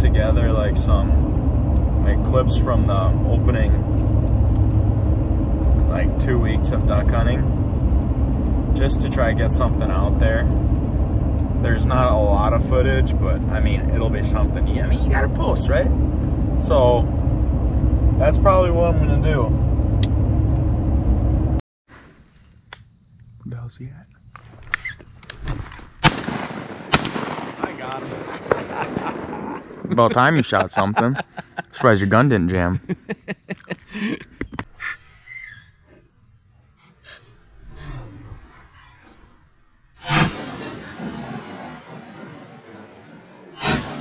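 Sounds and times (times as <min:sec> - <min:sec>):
low lingering rumble: 0:00.0 - 0:21.6, 0:26.0 - 0:33.0, 0:37.2 - 0:44.0
road noise inside vehicle: 0:00.0 - 0:21.6
shotgun blast echo: 0:26.0 - 0:28.8.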